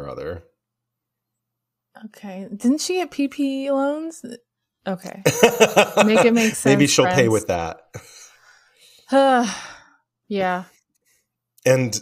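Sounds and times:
person sighing: 5.9s - 7.3s.

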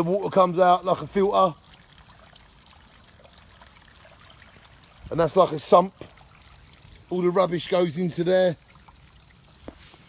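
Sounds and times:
water trickling from a pipe: 0.0s - 10.0s.

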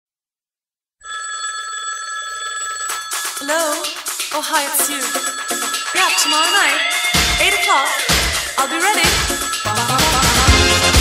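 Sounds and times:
telephone ringing: 1.0s - 11.0s.

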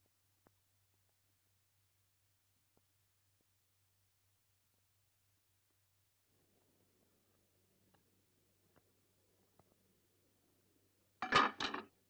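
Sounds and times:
tableware clattering: 11.2s - 11.9s.

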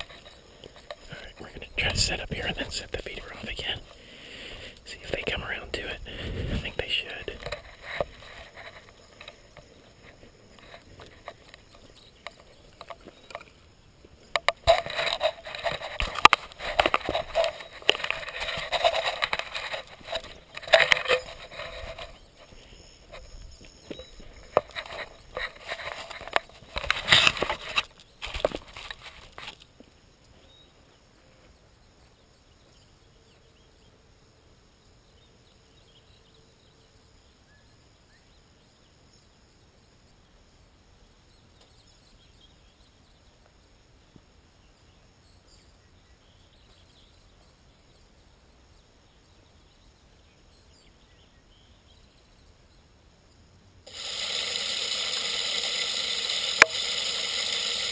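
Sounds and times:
quiet outdoor background: 0.0s - 57.9s
camera being handled: 14.4s - 22.2s, 23.9s - 29.7s.

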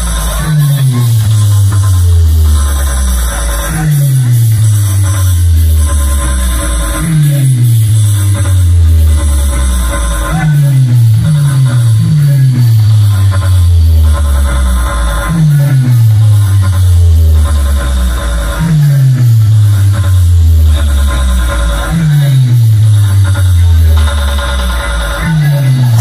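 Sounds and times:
electronic dance music: 0.0s - 26.0s
sliding deep bass notes: 0.0s - 26.0s.

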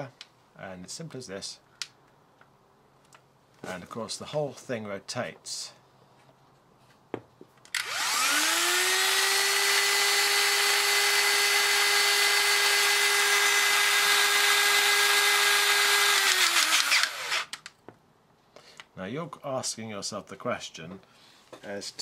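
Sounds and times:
crimping tool motor whine: 7.8s - 17.6s.

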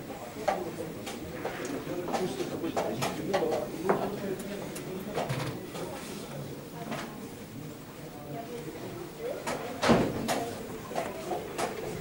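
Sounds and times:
low murmur of voices: 0.0s - 12.0s.

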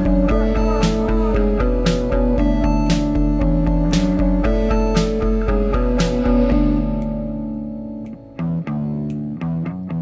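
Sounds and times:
held guitar chord: 0.0s - 10.0s
plucked bass and guitar notes: 0.0s - 10.0s.

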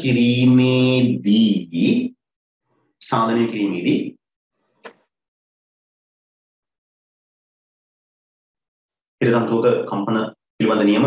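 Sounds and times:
man speaking drawn-out syllables: 0.0s - 2.1s.

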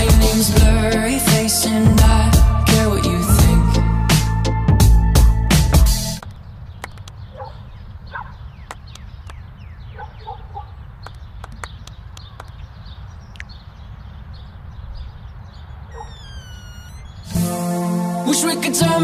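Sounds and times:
loud pop song: 0.0s - 6.2s, 17.3s - 19.0s
faint distant short calls: 15.9s - 17.4s.

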